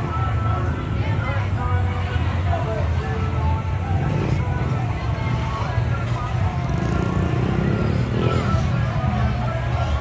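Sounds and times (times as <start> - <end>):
faint voices: 0.0 - 10.0
vehicle engine rumbling: 0.0 - 10.0.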